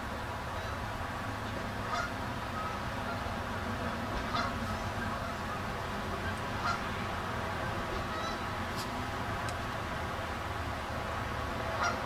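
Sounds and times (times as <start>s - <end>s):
low rush of background noise: 0.0s - 12.0s
geese honking: 1.8s - 3.4s, 4.1s - 8.6s, 11.7s - 12.0s.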